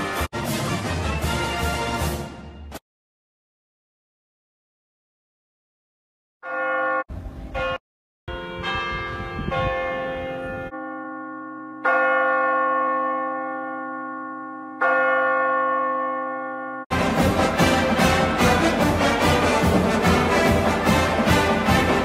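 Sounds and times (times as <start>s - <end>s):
bell tolling: 6.5s - 22.0s.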